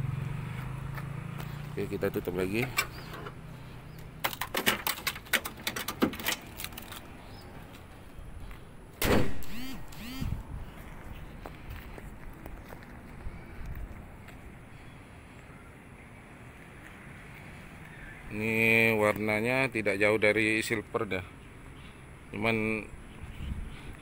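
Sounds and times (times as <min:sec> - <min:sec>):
clicks and rattles: 0:04.2 - 0:07.1.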